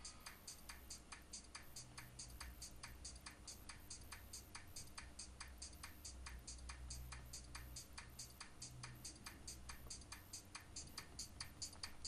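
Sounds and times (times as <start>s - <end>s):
faint regular ticking: 0.0s - 12.0s
low steady hum: 0.0s - 12.0s.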